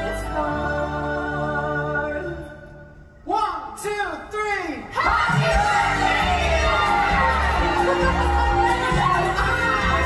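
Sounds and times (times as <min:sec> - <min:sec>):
group shouting and cheering: 0:04.8 - 0:10.0
loud band music: 0:05.0 - 0:10.0.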